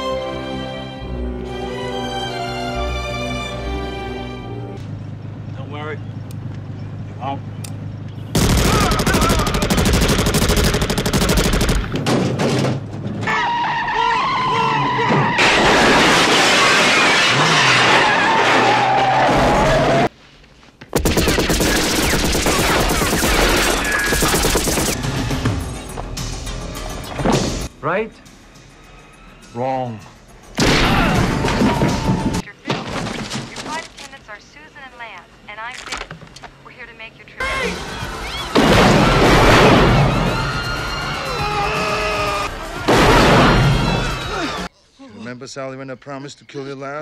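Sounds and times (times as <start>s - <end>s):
film music: 0.0s - 5.5s, 22.0s - 32.5s, 37.4s - 44.7s
rapid automatic gunfire: 8.4s - 12.0s, 21.0s - 25.0s
car windshield shattering: 15.2s - 19.5s.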